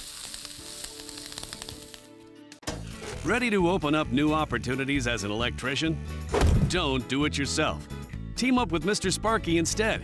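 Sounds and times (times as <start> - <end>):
pan sizzling: 0.0 - 2.2
background music: 0.5 - 10.0.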